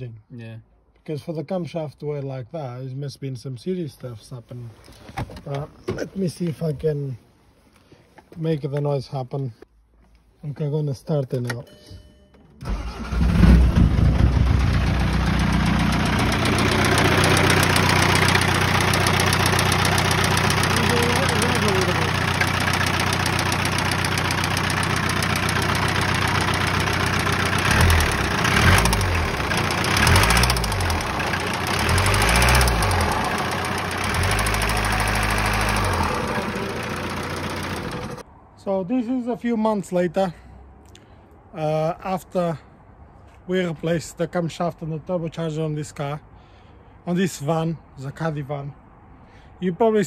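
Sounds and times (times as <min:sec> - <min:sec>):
diesel engine idling and revving: 0:12.7 - 0:38.2
engine knocking: 0:14.7 - 0:38.2.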